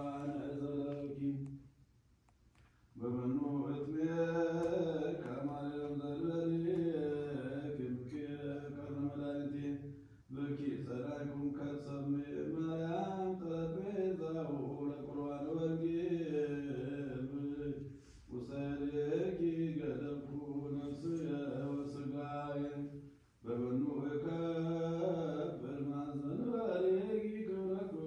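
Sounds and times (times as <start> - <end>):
man chanting liturgy: 0.0 - 1.6, 3.0 - 28.0.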